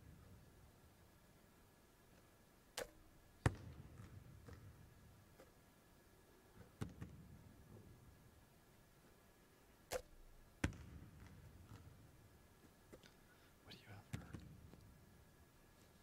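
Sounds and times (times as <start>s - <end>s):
basketball bouncing on wooden floor: 3.4s - 4.8s, 10.6s - 12.1s.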